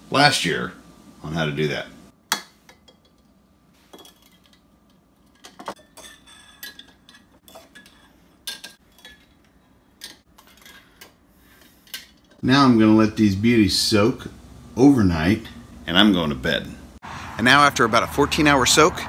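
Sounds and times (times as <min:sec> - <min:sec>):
metal tongs clinking on glass jars: 0:02.7 - 0:03.3, 0:03.9 - 0:11.2.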